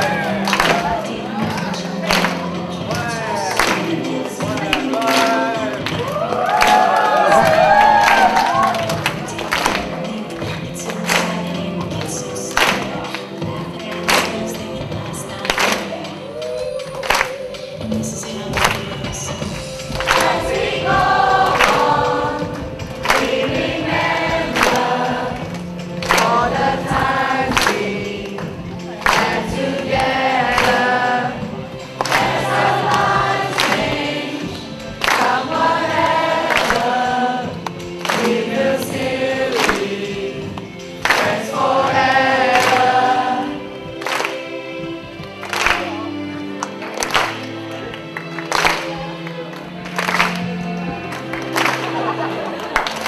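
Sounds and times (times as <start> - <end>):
group singing: 0.0 - 45.6
steady beat: 17.8 - 43.9.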